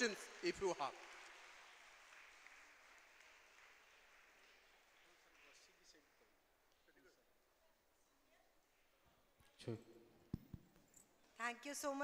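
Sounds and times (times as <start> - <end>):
faint audience applause: 0.0 - 6.4.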